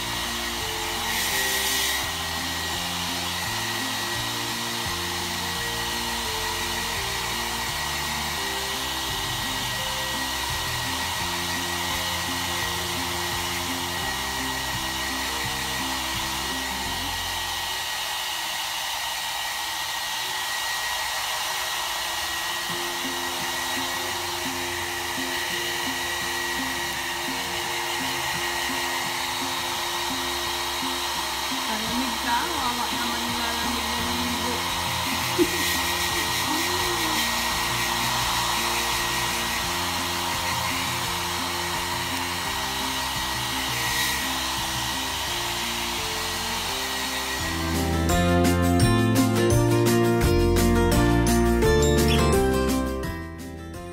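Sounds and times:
hair dryer blowing: 0.0 - 51.8.

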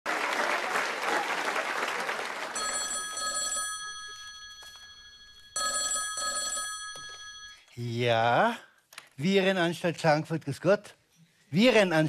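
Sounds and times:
studio audience applauding: 0.0 - 3.1
telephone ringing: 2.6 - 7.8.

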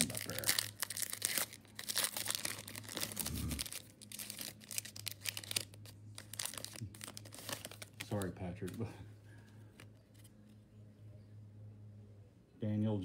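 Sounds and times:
foil wrappers crinkling: 0.0 - 9.0.

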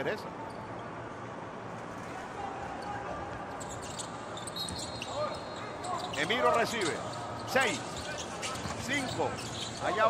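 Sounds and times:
voices in a gym: 0.0 - 10.0
shoe squeak: 3.5 - 10.0.

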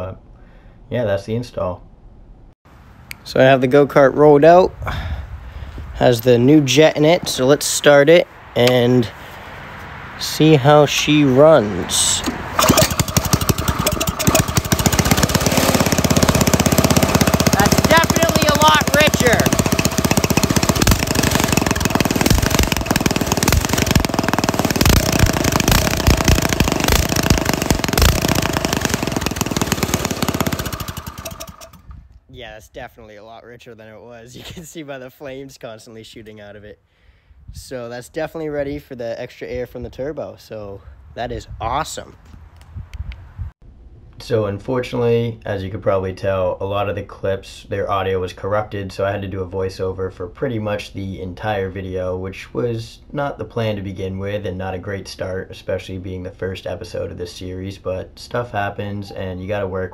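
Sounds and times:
go-kart engine running: 12.2 - 31.9.

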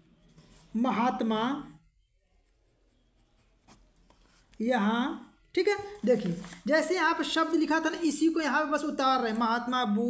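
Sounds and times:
pen scratching on paper: 2.2 - 4.7.

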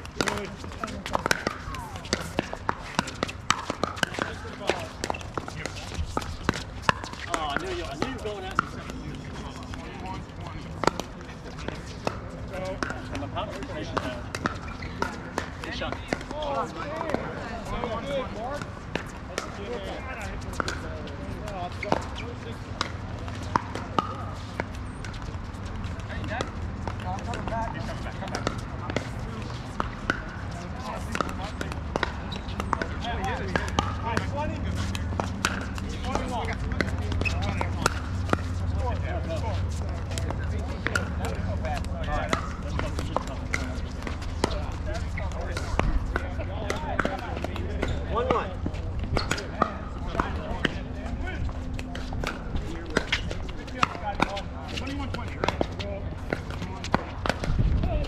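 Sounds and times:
faint voices of players: 0.0 - 58.0
paddles striking pickleballs: 0.0 - 58.0.

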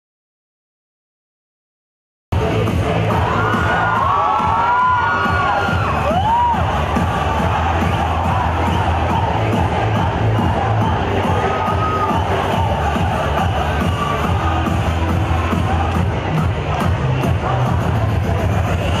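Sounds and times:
loud dance music: 2.3 - 19.0
crowd cheering and shouting: 2.4 - 19.0
high whoops: 3.2 - 6.8, 11.2 - 12.8.

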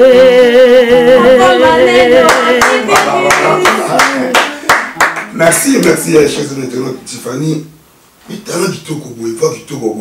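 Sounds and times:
woman singing a held note: 0.0 - 3.5
hands clapping: 2.2 - 6.0.

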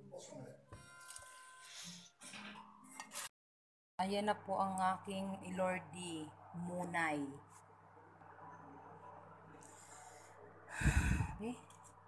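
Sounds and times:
breath on microphone: 9.7 - 11.4.

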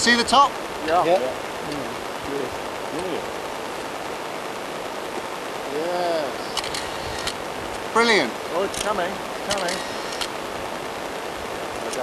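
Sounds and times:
steady outdoor hiss: 0.0 - 12.0
faint clicks: 6.5 - 7.9.

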